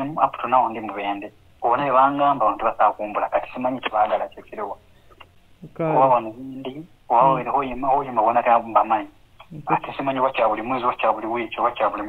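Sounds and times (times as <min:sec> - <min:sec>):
man talking: 0:00.0 - 0:04.8, 0:05.9 - 0:12.0.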